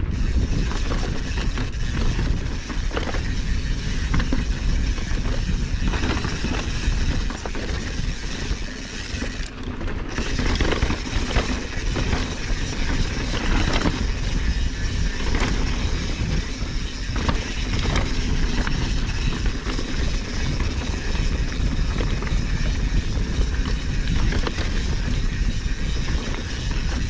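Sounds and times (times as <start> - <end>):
bike tyres on dirt trail: 0.0 - 27.0
wind buffeting microphone: 0.0 - 27.0
bike clicks and knocks on rocks: 0.1 - 27.0.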